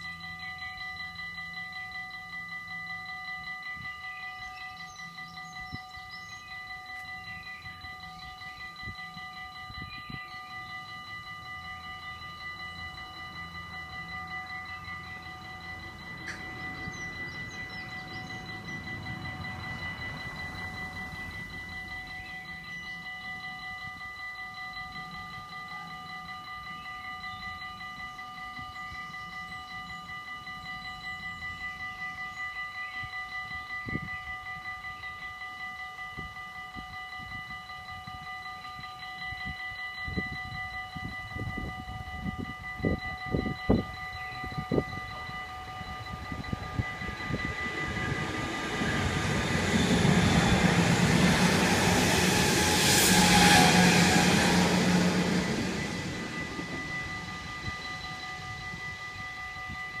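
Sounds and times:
level crossing bells ringing: 0.0s - 60.0s
train rumble: 0.0s - 60.0s.

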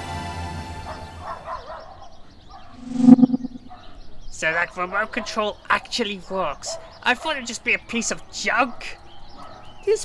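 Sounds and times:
music: 0.0s - 1.4s
faint warbling chirps: 2.8s - 3.8s.

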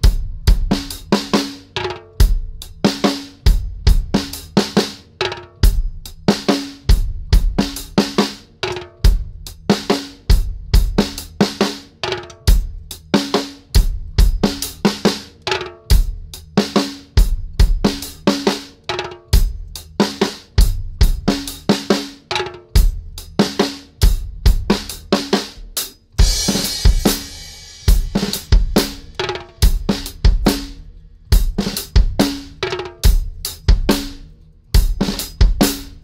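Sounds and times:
drum kit groove: 0.0s - 36.0s.

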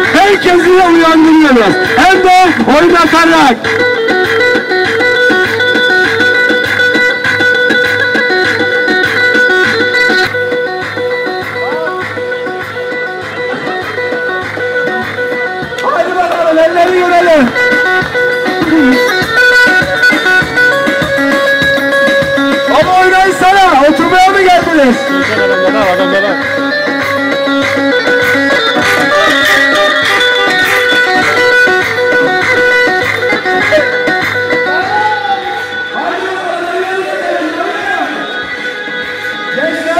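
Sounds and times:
plucked-string lead melody: 0.0s - 36.2s
electronic keyboard dance music: 0.0s - 39.9s.

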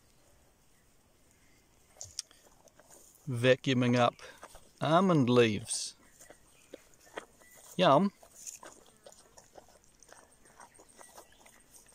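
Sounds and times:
pig crunching leaves: 1.9s - 11.9s.

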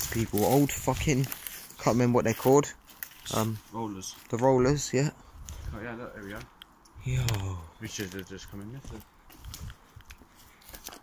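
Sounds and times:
footsteps crunching on rough ground: 0.0s - 11.0s.

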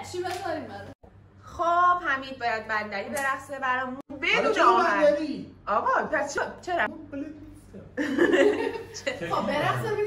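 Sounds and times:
people laughing: 8.0s - 9.7s.

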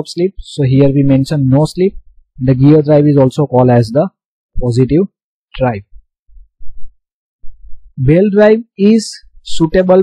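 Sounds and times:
low muffled thumps: 5.9s - 8.0s.

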